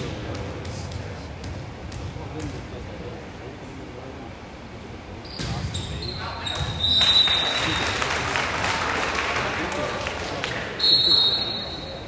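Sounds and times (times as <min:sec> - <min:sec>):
referee's whistle: 0:05.8 - 0:07.8, 0:10.8 - 0:12.0.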